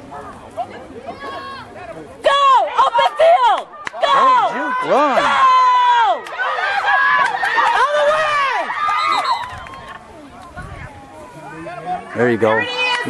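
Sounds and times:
spectators shouting and screaming: 0.0 - 13.0.

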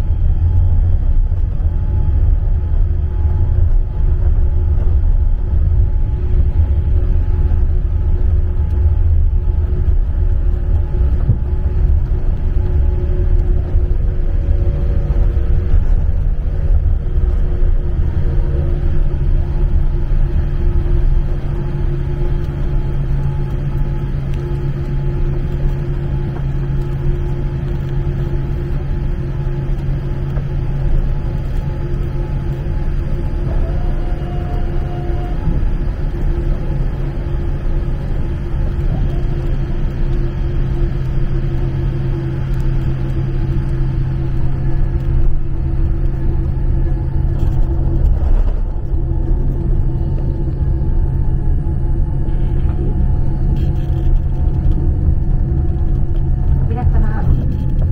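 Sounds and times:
constant cabin hum: 0.0 - 57.9
jet engines idling rumble: 0.0 - 57.9.

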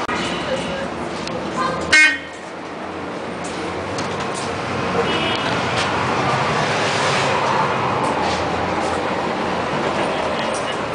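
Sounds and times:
bus rumbling: 0.0 - 10.9
street traffic: 0.0 - 10.9
vehicle horn honk: 1.9 - 2.3, 5.0 - 5.6.

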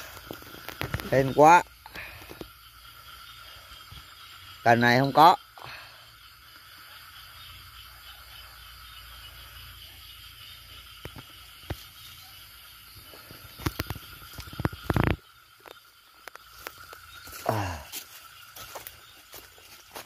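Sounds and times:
night insects droning: 0.0 - 20.0
footsteps through undergrowth: 16.4 - 20.0.

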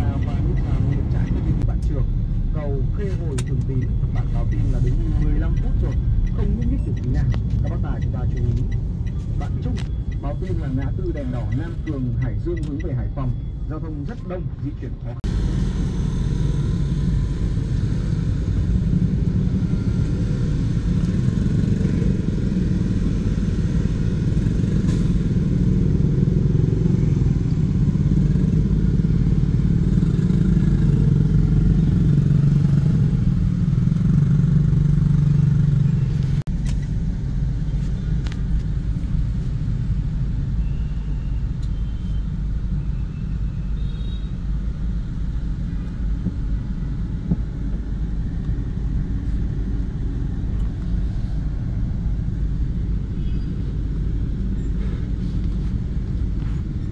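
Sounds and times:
traffic engine rumble and road noise: 0.0 - 56.9.

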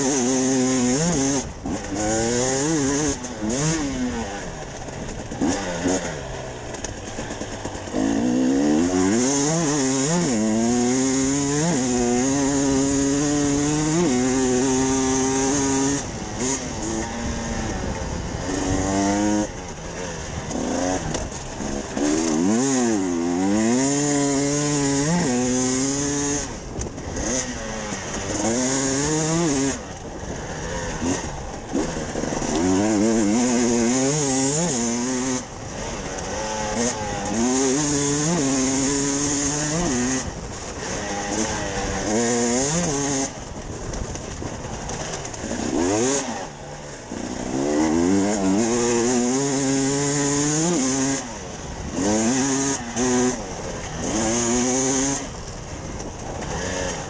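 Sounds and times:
motorcycle engine revving hard: 0.0 - 57.0.

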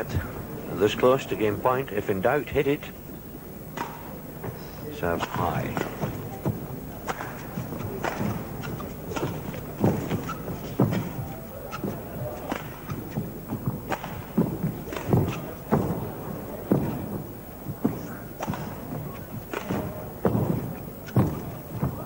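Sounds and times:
footsteps thudding on court: 3.6 - 22.0
rackets hitting shuttlecock: 3.7 - 4.2, 5.2 - 16.1, 18.3 - 21.9.

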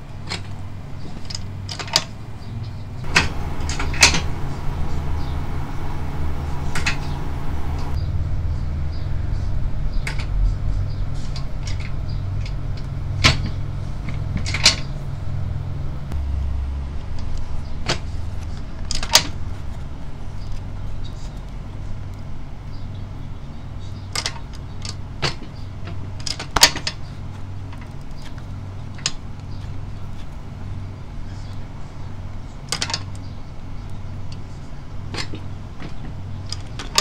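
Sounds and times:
steady low hum: 3.0 - 8.0, 15.6 - 18.8.

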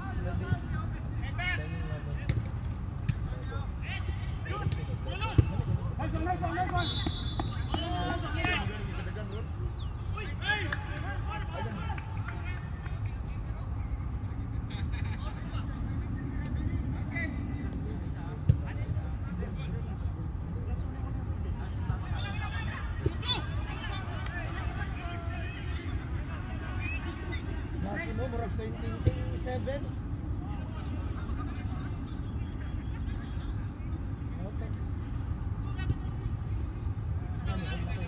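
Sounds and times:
distant players shouting: 3.5 - 12.8
high whistle: 6.8 - 7.9.

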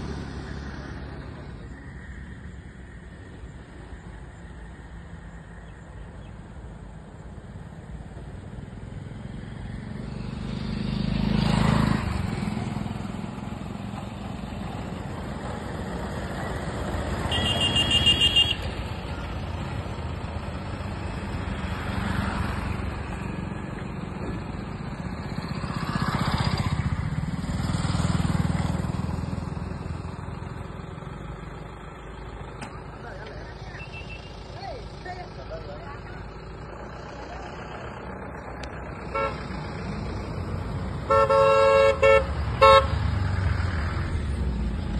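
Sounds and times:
road vehicles passing by: 0.0 - 44.9.

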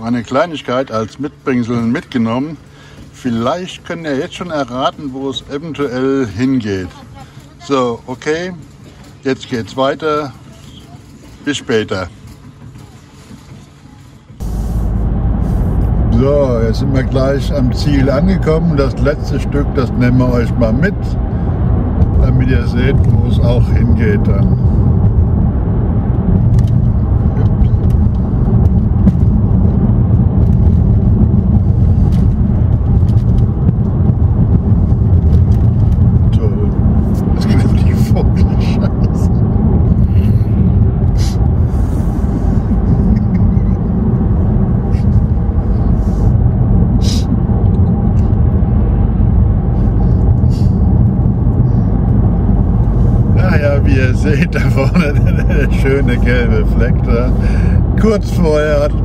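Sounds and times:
car engine and tyres rumbling: 0.0 - 59.0.

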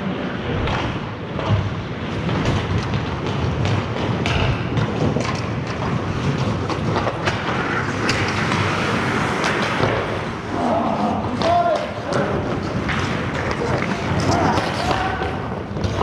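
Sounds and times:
hockey sticks clacking: 1.5 - 16.0
skate blades scraping ice: 2.0 - 16.0.

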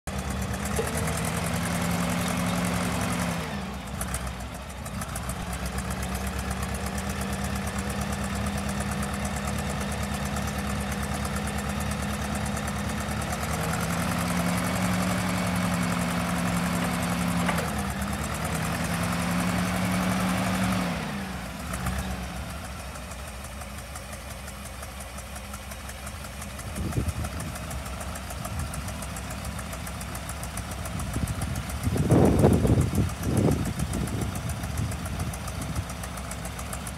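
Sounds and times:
forklift engine running: 0.1 - 36.9.

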